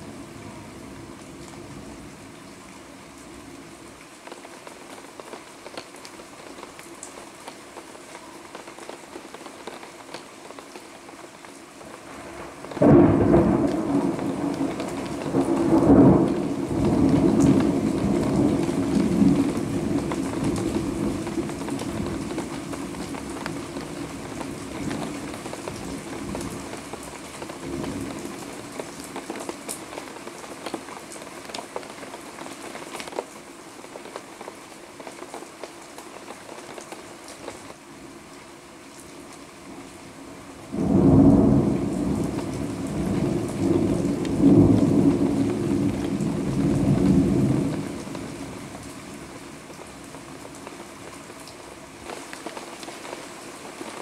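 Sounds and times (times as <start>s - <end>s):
steady rain falling: 0.0s - 54.0s
thunder clap and rumble: 12.2s - 26.8s, 40.7s - 48.8s.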